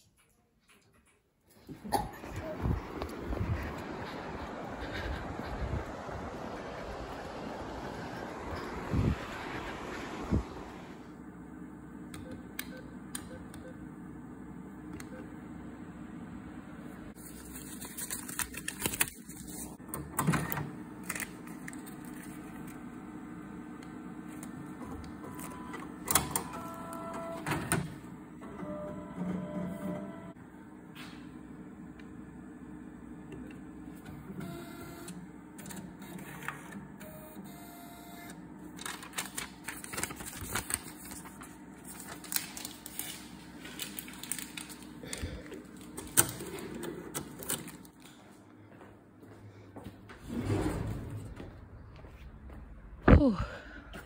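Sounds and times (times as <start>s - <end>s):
machine hum: 1.5s - 17.6s.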